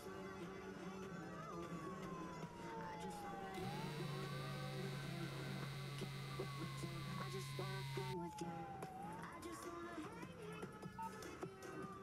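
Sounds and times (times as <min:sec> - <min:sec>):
distant siren wailing: 0:03.4 - 0:08.2
low steady hum: 0:03.6 - 0:08.2.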